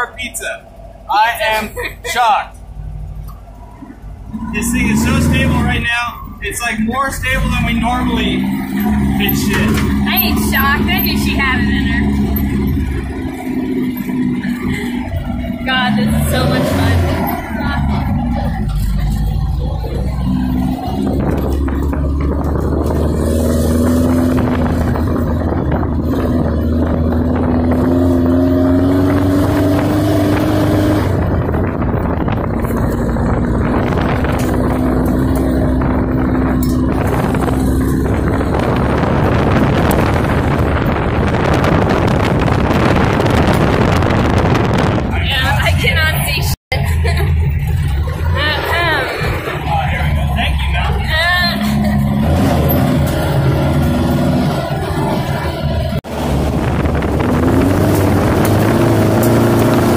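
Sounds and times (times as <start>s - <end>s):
car engine under load: 0.0s - 59.9s
noisy rush: 0.0s - 59.9s.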